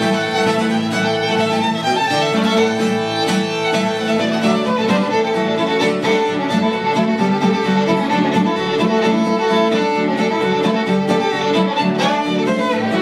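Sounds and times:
bowed fiddle melody: 0:00.0 - 0:13.0
strummed guitar chords: 0:00.0 - 0:13.0.

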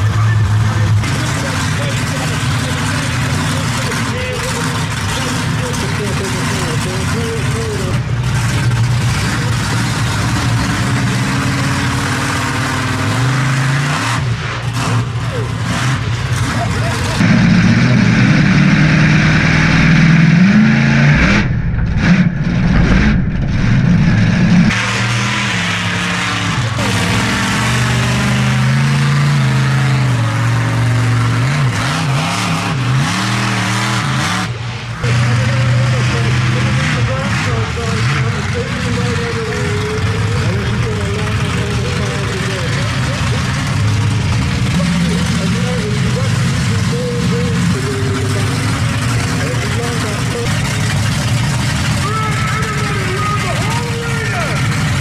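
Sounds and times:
monster truck engine revving: 0:00.0 - 0:55.0.

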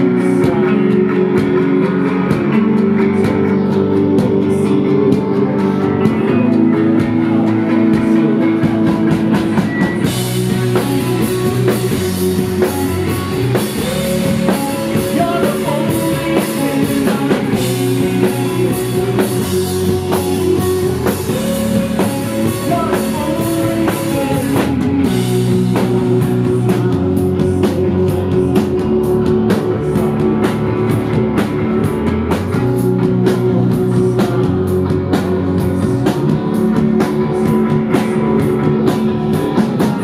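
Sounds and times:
bass chords: 0:00.0 - 0:40.0
electric guitar chords: 0:00.0 - 0:40.0
drum beat: 0:08.0 - 0:40.0.

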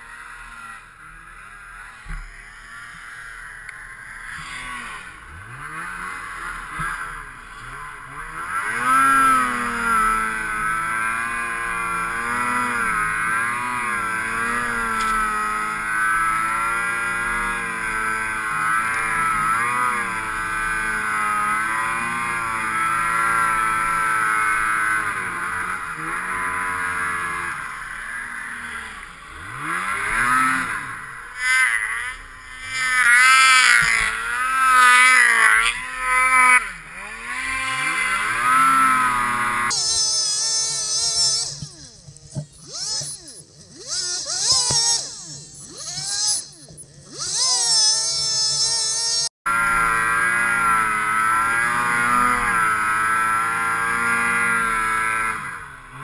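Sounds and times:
snowmobile engine revving: 0:00.0 - 0:56.0.

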